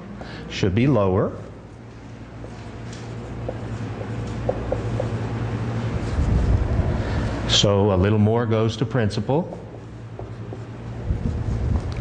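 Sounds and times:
steady low hum: 0.0 - 12.0
marker writing on whiteboard: 3.4 - 5.2.

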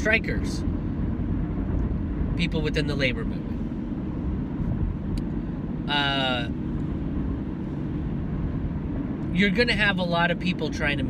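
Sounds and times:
road and engine noise in car: 0.0 - 11.0.

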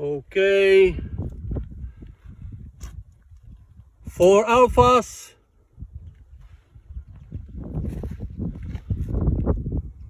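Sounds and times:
footsteps on dirt: 6.0 - 9.6.

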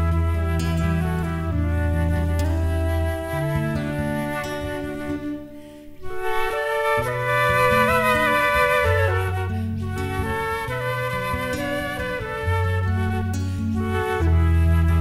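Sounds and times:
acoustic guitar: 0.0 - 15.0
flute melody: 0.0 - 15.0.

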